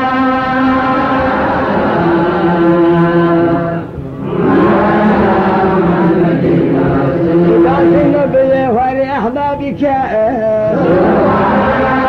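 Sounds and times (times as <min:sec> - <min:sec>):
person chanting devotional song: 0:00.0 - 0:12.0.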